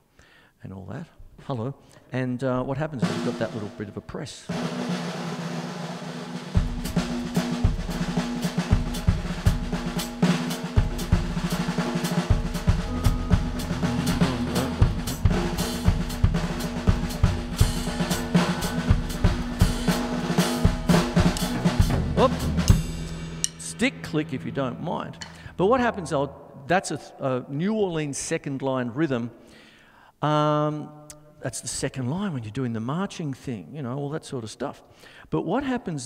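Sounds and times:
snare drum rolls: 3.0s - 3.8s, 4.5s - 24.8s
bass drum hits: 6.6s - 26.3s.

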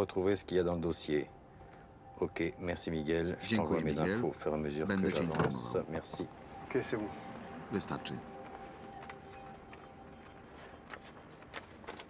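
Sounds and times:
faint steady drone: 0.0s - 11.4s
man speaking: 2.2s - 8.3s.

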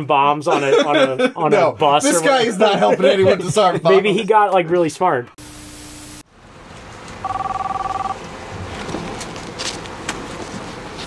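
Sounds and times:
electronic telephone ring: 7.2s - 8.2s.

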